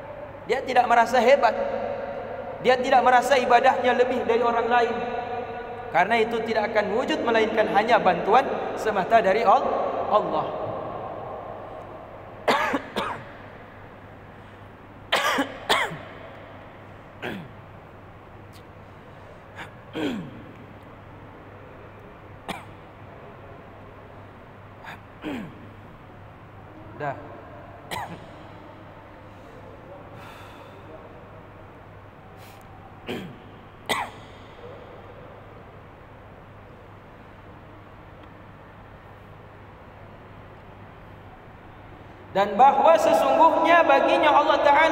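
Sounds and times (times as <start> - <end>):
steady low hum: 0.0 - 44.9
man coughing: 12.4 - 13.3, 15.1 - 16.0, 17.2 - 17.6, 19.5 - 20.4, 24.8 - 25.7, 27.9 - 28.3, 33.0 - 34.4.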